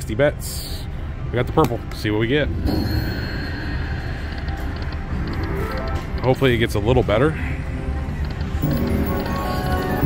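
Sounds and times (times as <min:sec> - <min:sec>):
slot machine electronic music: 0:02.5 - 0:07.1, 0:07.8 - 0:10.0.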